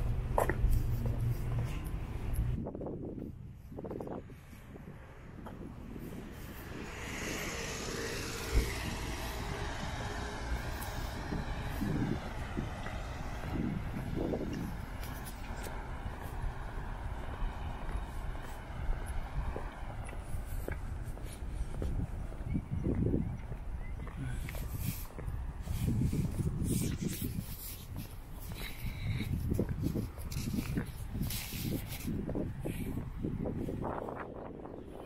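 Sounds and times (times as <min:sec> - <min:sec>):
vehicle driving past: 0:04.9 - 0:21.7.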